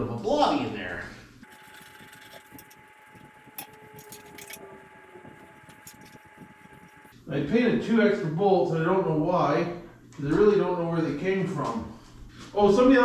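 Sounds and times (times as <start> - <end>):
faint steady high whine: 1.4 - 10.7.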